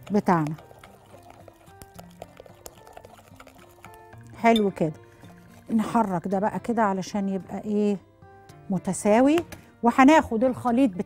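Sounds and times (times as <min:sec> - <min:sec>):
spoon stirring batter in glass bowl: 0:00.0 - 0:06.4
soft background music: 0:00.0 - 0:11.0.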